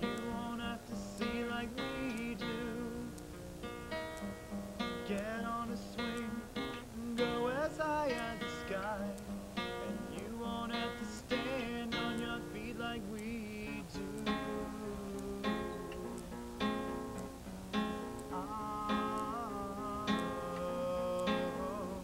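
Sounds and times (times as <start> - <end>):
man singing: 0.0 - 3.2, 5.0 - 16.2, 18.3 - 22.0
acoustic guitar strumming: 0.0 - 22.0.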